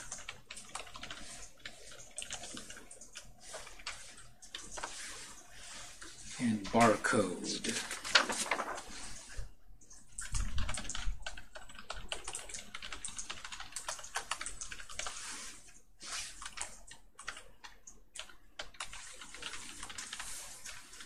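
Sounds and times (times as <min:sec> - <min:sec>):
computer keyboard typing: 0:00.0 - 0:05.9, 0:09.8 - 0:21.0.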